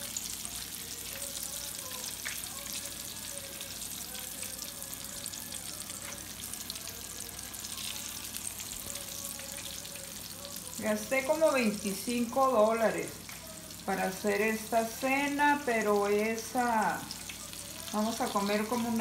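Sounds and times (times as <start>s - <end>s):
shrimp sizzling in hot oil: 0.0s - 19.0s.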